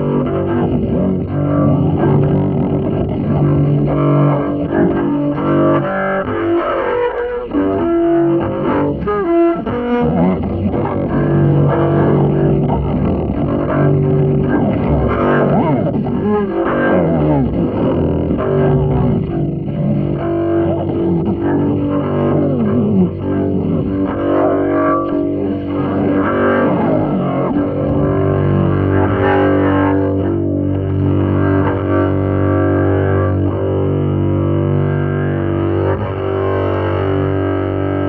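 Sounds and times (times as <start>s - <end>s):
double bass improvising: 0.0s - 38.0s.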